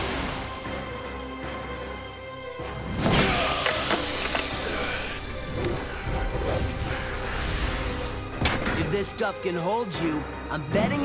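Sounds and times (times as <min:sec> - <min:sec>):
dramatic cartoon action music: 0:00.0 - 0:11.0.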